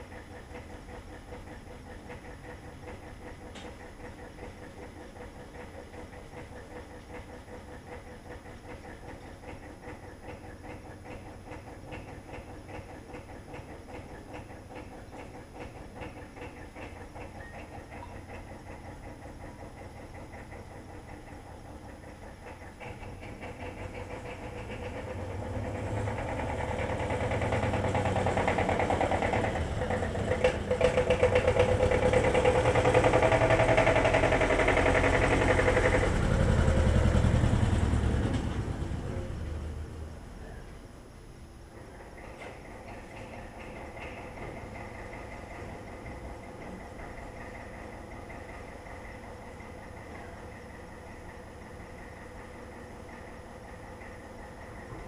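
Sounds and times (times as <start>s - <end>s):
tractor engine running: 0.0s - 55.0s.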